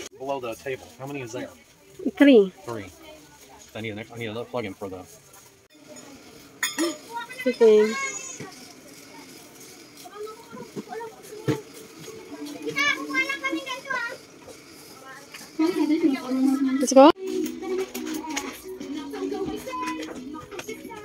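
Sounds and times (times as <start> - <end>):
children chattering: 0.3 - 4.0, 5.0 - 21.0.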